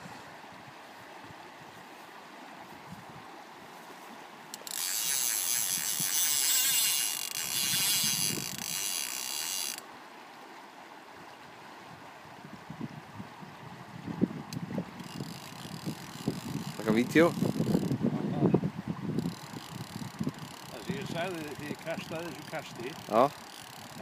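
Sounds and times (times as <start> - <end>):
fishing reel ratcheting: 4.5 - 9.8, 15.0 - 18.0, 19.2 - 24.0.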